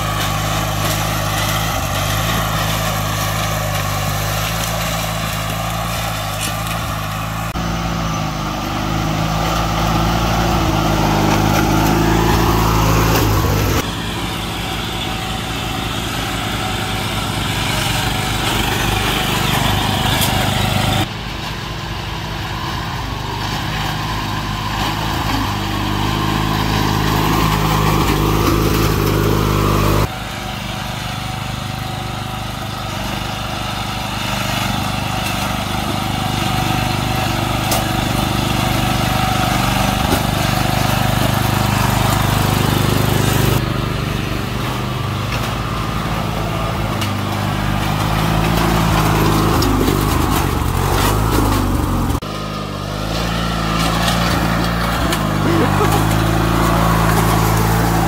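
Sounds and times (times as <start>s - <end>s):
riding lawn mower engine: 0.0s - 58.0s.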